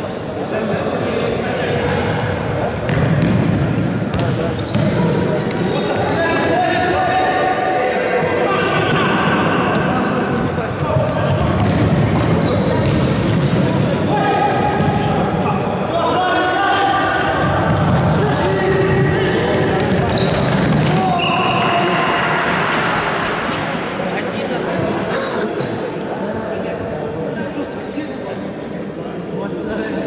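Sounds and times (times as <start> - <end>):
players shouting: 14.0 - 23.4.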